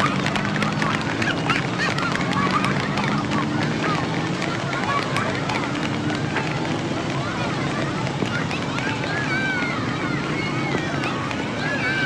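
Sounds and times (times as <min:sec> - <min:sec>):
babble of voices: 0:00.0 - 0:12.0
traffic running: 0:00.0 - 0:12.0.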